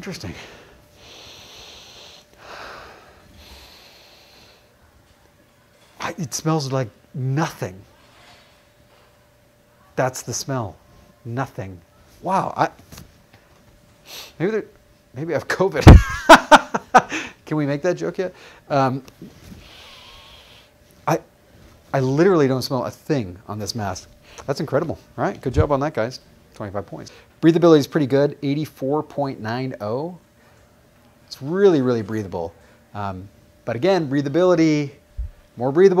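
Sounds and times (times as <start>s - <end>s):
man sniffing through nose: 1.0s - 4.7s, 14.0s - 14.4s, 19.5s - 20.7s.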